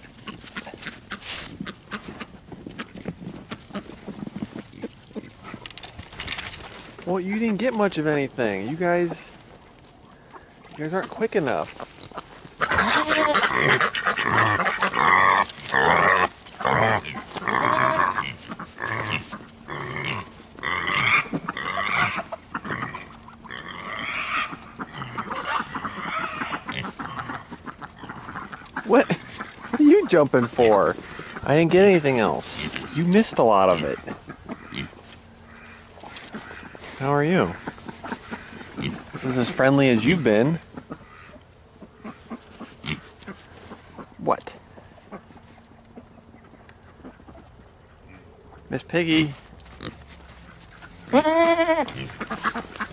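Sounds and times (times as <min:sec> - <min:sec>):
pigs calling: 0:00.0 - 0:52.9.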